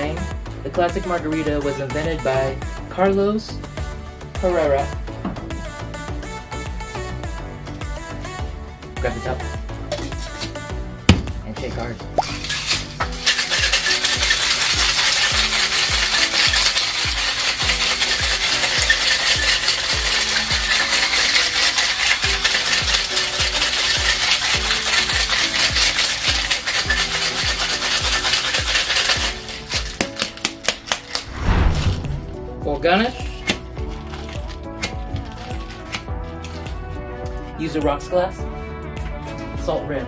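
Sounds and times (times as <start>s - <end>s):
ice rattling in cocktail shaker: 12.2s - 31.3s, 33.8s - 36.6s.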